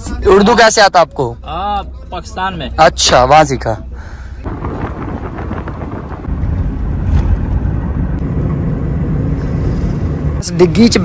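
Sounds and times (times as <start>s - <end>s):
car road and engine rumble: 0.0s - 11.0s
wind noise: 4.4s - 10.4s.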